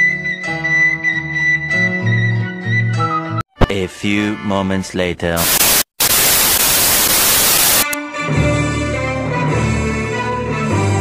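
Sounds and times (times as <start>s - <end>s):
television static hiss: 5.4s - 7.9s.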